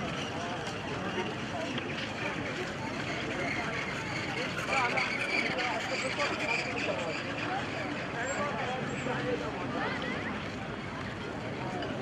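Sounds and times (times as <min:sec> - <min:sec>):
crowd voices babbling: 0:00.0 - 0:12.0.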